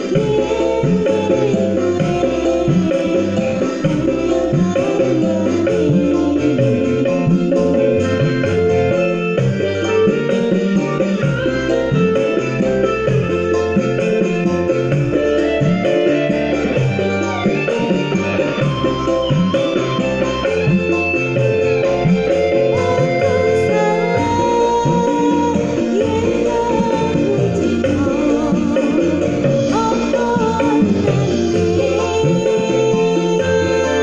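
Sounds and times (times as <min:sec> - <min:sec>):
guitar-led pop instrumental: 0:00.0 - 0:34.0.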